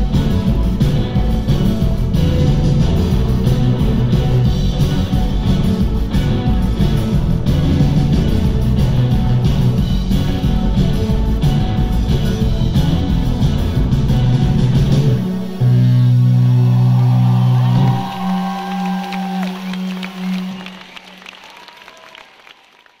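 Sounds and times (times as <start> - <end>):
live rock band with electric guitars: 0.0 - 20.6.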